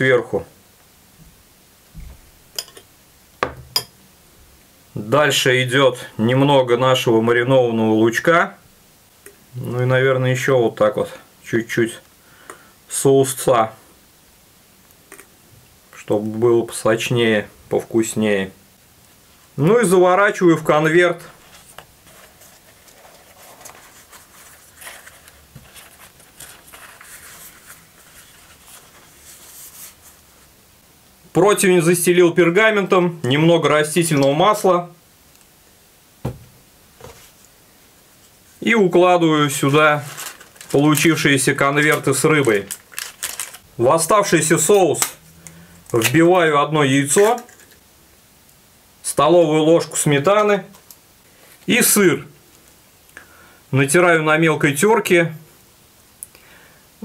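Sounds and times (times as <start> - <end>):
flatbread rustling and crinkling: 21.2 - 30.6, 39.5 - 43.7
soft thump: 36.2 - 37.2.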